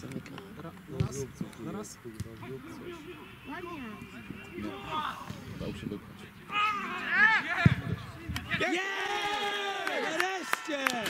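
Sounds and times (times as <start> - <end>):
people talking: 0.0 - 8.8.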